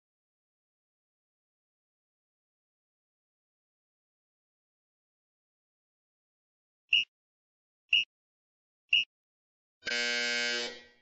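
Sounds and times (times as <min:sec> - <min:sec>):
interval timer buzzer: 0:09.8 - 0:11.0.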